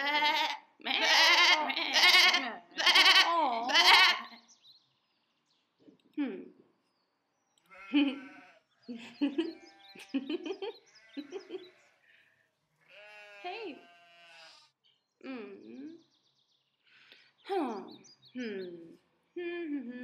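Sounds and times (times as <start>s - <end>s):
goat bleating: 0.0s - 4.4s, 7.7s - 8.6s, 12.8s - 14.7s
breathy chuckling: 8.9s - 11.8s.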